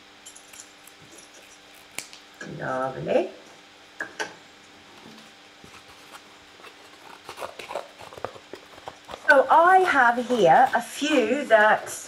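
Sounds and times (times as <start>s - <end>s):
scissors snipping cardboard: 5.7s - 11.3s.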